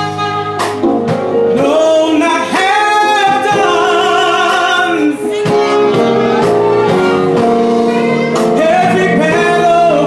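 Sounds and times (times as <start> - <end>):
man singing lead: 1.4 - 10.0
gospel choir singing: 2.1 - 10.0.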